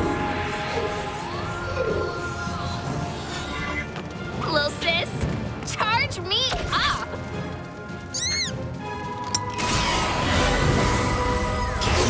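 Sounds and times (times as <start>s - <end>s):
background music: 0.0s - 12.0s
cartoon creature squeak: 8.1s - 8.6s
shimmering magic sound effect: 9.6s - 12.0s.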